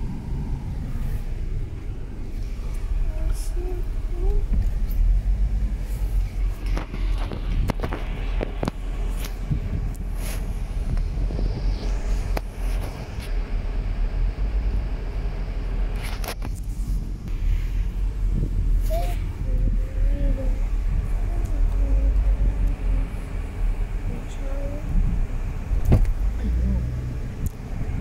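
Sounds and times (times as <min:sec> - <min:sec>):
car low rumble: 0:00.0 - 0:28.0.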